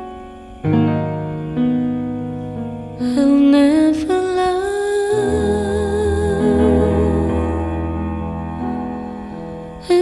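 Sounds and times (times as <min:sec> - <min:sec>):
piano chords: 0:00.0 - 0:10.0
woman singing a long note: 0:03.0 - 0:07.9.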